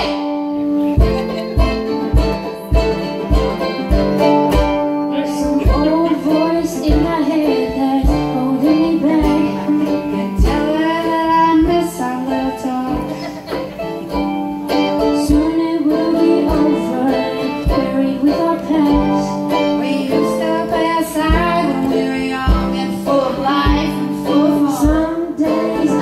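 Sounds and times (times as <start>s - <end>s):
acoustic guitar strumming: 0.0s - 26.0s
harmonica melody: 0.0s - 26.0s
mandolin strumming: 0.0s - 26.0s.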